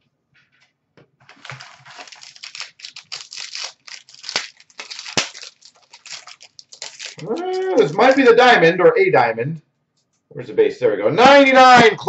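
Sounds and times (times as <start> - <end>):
wrapper crinkling and tearing: 1.3 - 8.3.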